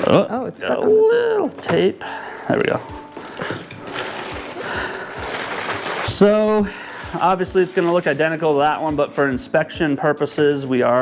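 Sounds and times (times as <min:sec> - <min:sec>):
plastic bag rustling: 0:02.5 - 0:09.7, 0:10.3 - 0:11.0.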